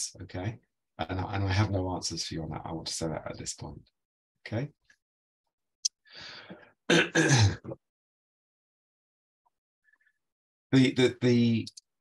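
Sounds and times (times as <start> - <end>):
man clearing throat: 6.9 - 7.8
man coughing: 6.9 - 7.8.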